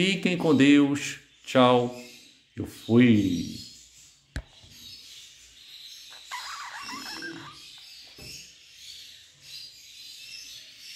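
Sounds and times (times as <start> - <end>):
budgerigars chattering and chirping: 0.0 - 10.9.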